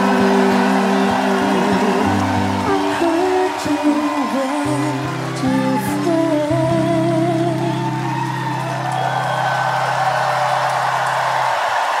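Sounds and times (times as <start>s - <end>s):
audience cheering and whooping: 0.0s - 12.0s.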